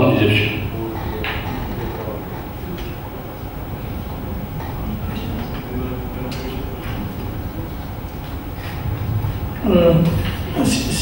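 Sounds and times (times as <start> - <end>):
faint murmuring voices: 0.0 - 11.0
low room rumble: 0.0 - 11.0.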